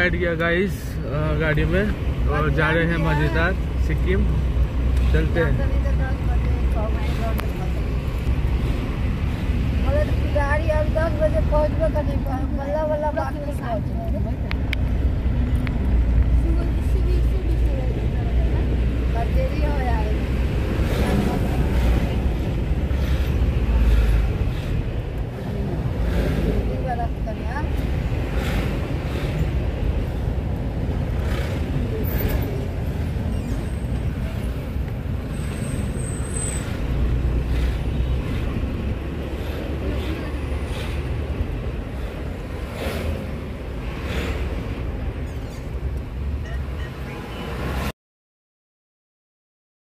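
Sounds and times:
car engine and road rumble: 0.0s - 47.9s.

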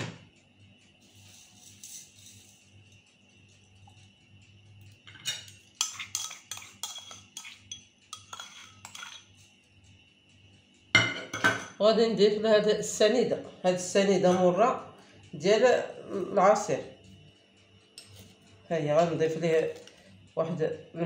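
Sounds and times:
utensil clinking against steel pot: 5.0s - 9.4s.

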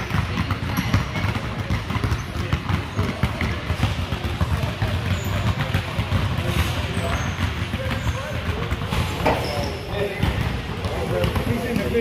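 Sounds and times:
basketballs bouncing on wooden floor: 0.0s - 12.0s.

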